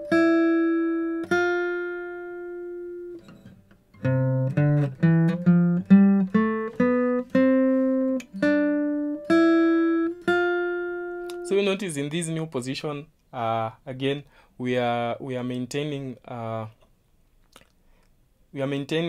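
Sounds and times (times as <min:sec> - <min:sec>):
acoustic guitar picked notes: 0:00.0 - 0:11.8.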